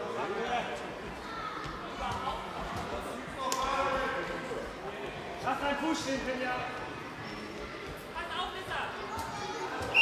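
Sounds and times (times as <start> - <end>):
murmur of voices: 0.0 - 10.0
handball bouncing on hall floor: 1.6 - 4.2.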